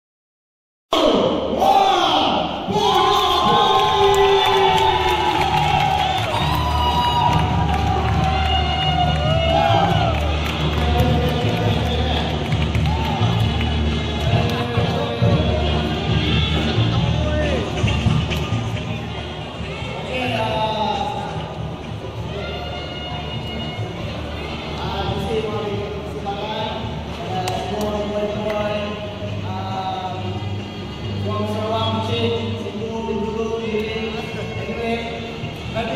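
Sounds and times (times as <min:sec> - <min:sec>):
crowd cheering and shouting: 0:01.0 - 0:16.3.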